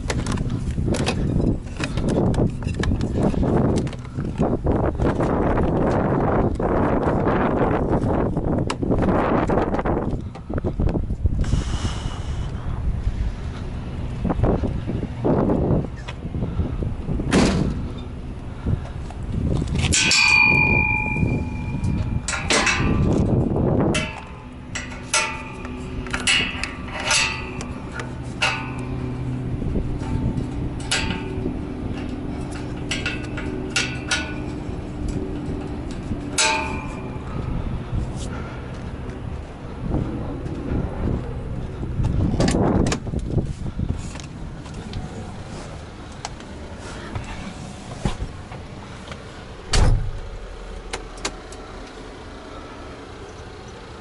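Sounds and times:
metal clanks and knocks: 0.0 - 6.0, 19.7 - 38.9
loud low rumbling: 0.0 - 54.0
low engine hum: 0.0 - 54.0
ringing metal clang: 19.9 - 37.6.

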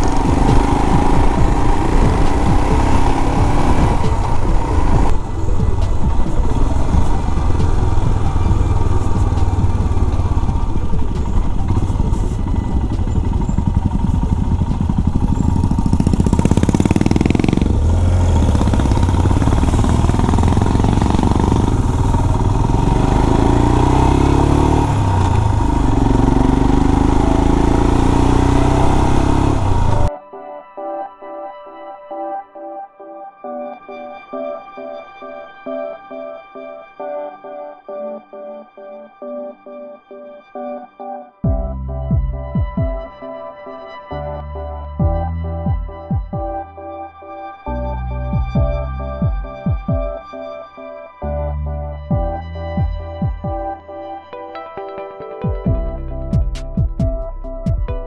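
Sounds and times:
motorcycle engine running: 0.0 - 30.1, 41.4 - 43.2, 48.3 - 50.3, 52.1 - 53.8, 55.6 - 58.0
tyre noise on wet road: 0.0 - 30.1.

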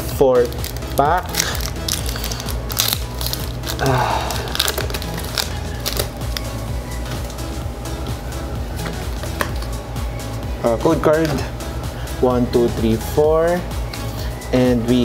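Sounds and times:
background music: 0.0 - 15.0
foil wrapper crinkling: 0.4 - 6.5.

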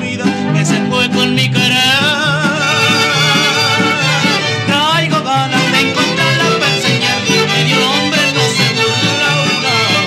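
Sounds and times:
mariachi band playing: 0.0 - 10.0
violins playing melody: 2.5 - 10.0.

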